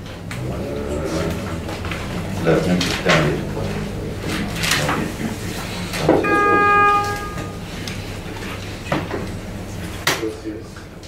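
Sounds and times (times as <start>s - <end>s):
buzzy steady pitched tone: 6.2s - 7.8s.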